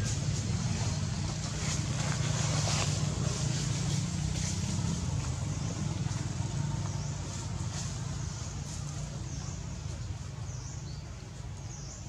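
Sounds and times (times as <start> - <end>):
constant hiss: 0.0 - 12.0
low engine hum: 0.0 - 12.0.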